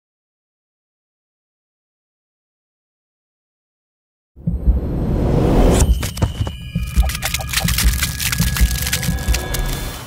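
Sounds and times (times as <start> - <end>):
low thumps: 4.4 - 8.8
fast clicks and ticks: 6.0 - 10.0.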